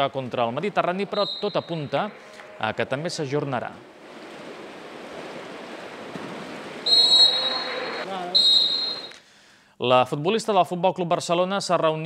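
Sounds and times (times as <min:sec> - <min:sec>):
referee's whistle blast: 0:01.2 - 0:01.9, 0:06.8 - 0:09.2
water splashing in pool: 0:03.4 - 0:09.2.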